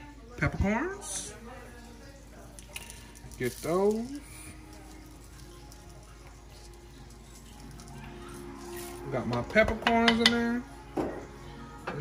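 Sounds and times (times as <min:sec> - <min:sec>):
background music: 0:00.0 - 0:12.0
low background voices: 0:00.0 - 0:12.0
peppercorns pattering into spoon: 0:02.5 - 0:09.1.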